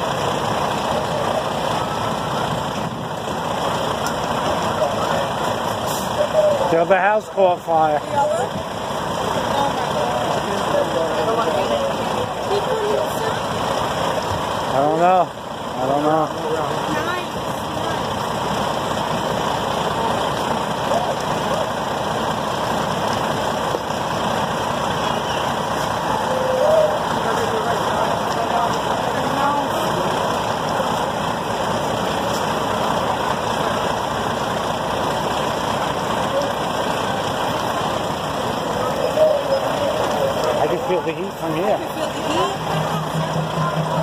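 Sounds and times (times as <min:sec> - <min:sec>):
faint voices: 0:00.0 - 0:44.0
fire engine engine running: 0:00.0 - 0:44.0.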